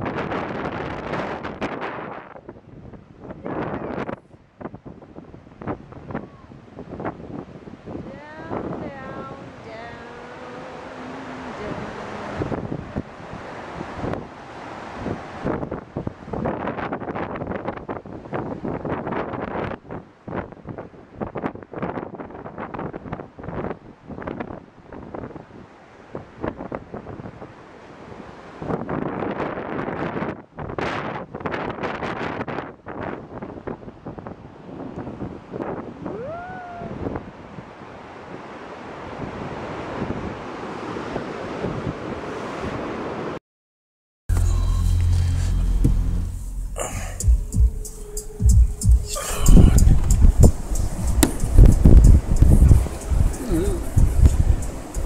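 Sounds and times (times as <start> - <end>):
wind buffeting microphone: 0.0 - 43.3, 45.8 - 55.0
waterfall rushing over rocks: 8.3 - 15.5, 49.1 - 51.6.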